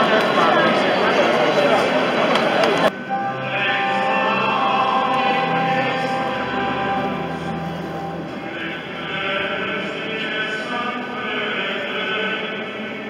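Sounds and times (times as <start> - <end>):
crowd talking: 0.0 - 13.0
choir singing a slow hymn: 3.0 - 13.0.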